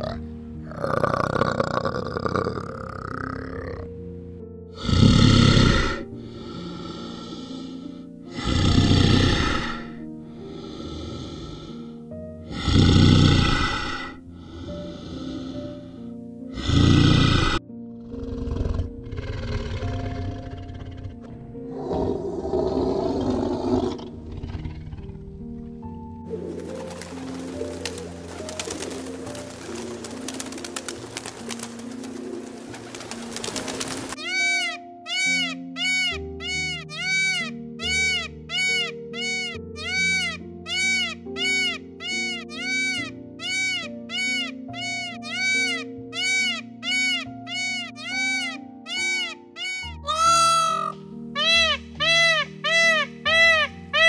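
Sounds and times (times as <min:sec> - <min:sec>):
background music: 0:00.0 - 0:54.0
tiger roaring: 0:12.5 - 0:14.2, 0:16.6 - 0:25.3
peacock calling: 0:26.3 - 0:54.0.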